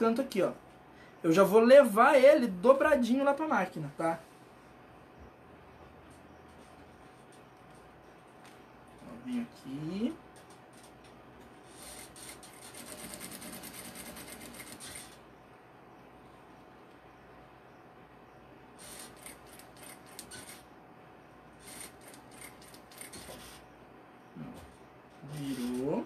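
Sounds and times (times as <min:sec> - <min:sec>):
sewing machine stitching: 0:11.8 - 0:15.2.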